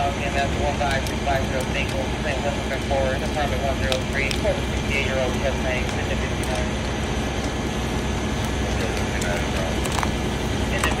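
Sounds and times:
engines running low rumble: 0:00.0 - 0:11.0
fire crackling and popping: 0:00.0 - 0:11.0.

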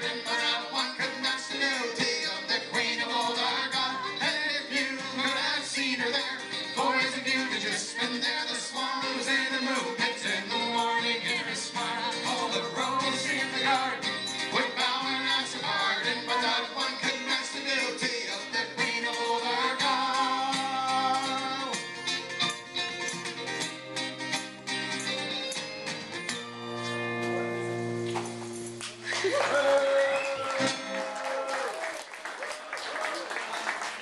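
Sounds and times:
tambourine jingling: 0:00.0 - 0:26.4, 0:28.3 - 0:28.8
folk band playing: 0:00.0 - 0:28.7
strummed acoustic guitar: 0:00.0 - 0:29.1
audience applause: 0:28.8 - 0:34.0
audience voices: 0:28.9 - 0:34.0.

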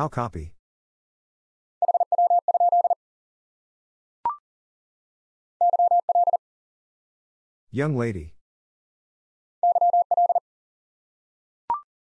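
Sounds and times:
morse code tone: 0:01.8 - 0:03.0, 0:05.6 - 0:06.4, 0:09.6 - 0:10.4.

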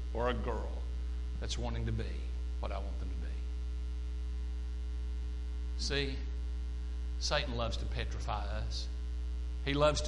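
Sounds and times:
electrical mains hum: 0:00.0 - 0:10.0
person speaking: 0:00.1 - 0:03.6.

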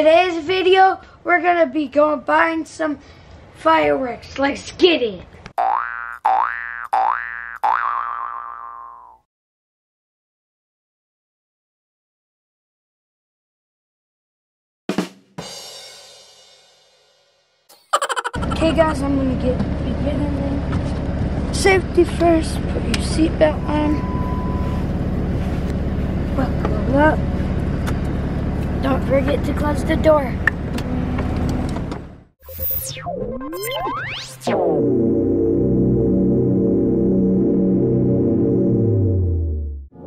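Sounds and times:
cartoon boing sound effect: 0:05.6 - 0:09.3
engine idling low hum: 0:18.4 - 0:32.3
thin high tone: 0:23.4 - 0:25.0.

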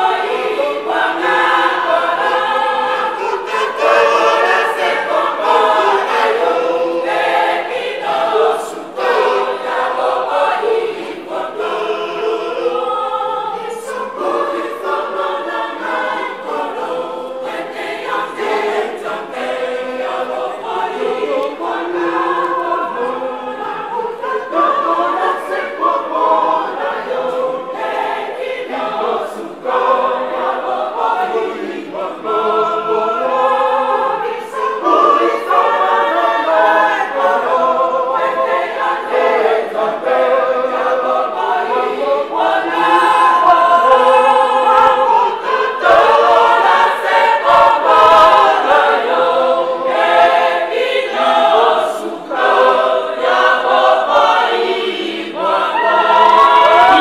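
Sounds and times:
women's choir singing: 0:00.0 - 0:57.0.

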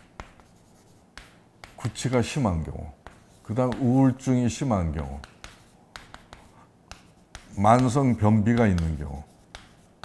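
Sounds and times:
chalk writing on chalkboard: 0:00.0 - 0:10.0.

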